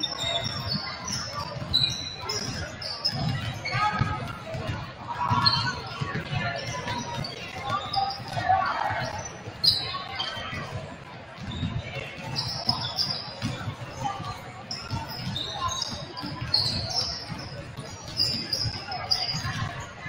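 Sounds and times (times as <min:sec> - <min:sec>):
sneaker squeaks: 0:00.0 - 0:20.0
basketballs bouncing on wooden floor: 0:00.1 - 0:20.0.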